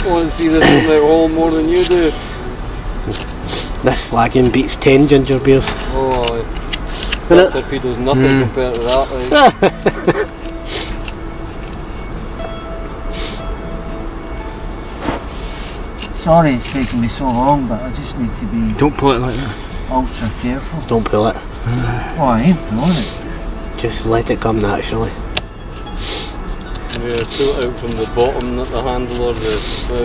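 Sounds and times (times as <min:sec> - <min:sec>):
soft background music: 0:00.0 - 0:30.0.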